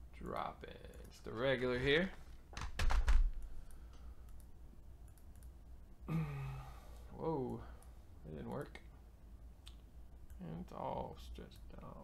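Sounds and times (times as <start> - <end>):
man humming low: 6.1 - 6.8.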